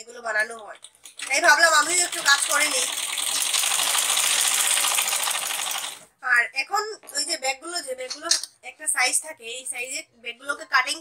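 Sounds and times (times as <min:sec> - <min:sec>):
sewing machine stitching: 0:01.2 - 0:06.1.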